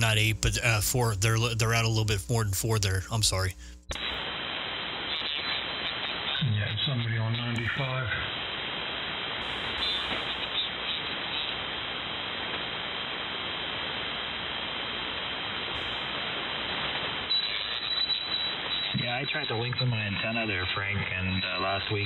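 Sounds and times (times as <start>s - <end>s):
radio crackles: 0.0s - 22.0s
radio receiver static hiss: 0.0s - 22.0s.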